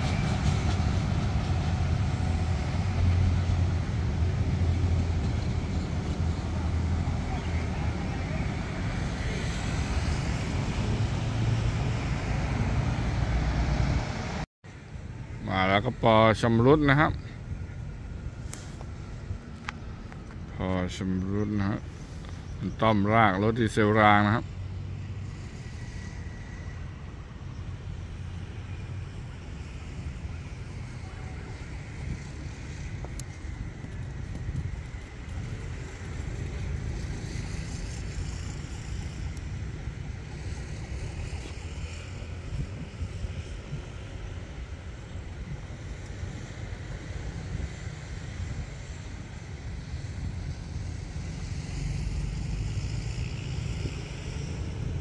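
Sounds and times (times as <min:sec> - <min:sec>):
diesel locomotive engine rumbling: 0:00.0 - 0:55.0
wind on microphone: 0:30.2 - 0:55.0.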